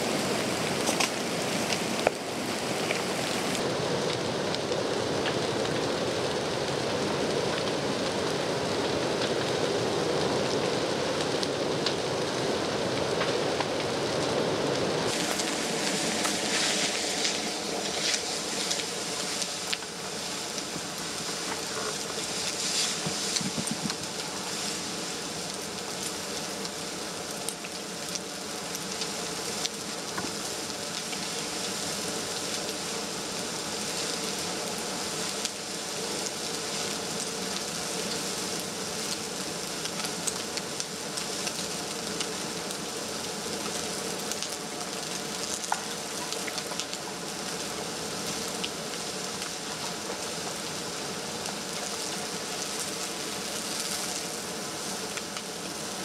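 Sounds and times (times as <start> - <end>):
burning wood crackling and popping: 0.0 - 56.0
fire hissing: 0.0 - 56.0.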